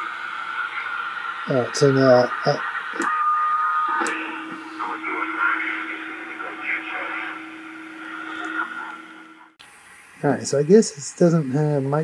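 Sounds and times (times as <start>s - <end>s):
faint thin radio voices: 0.0s - 9.6s
radio static hiss: 0.0s - 12.0s
steady low hum: 0.0s - 12.0s.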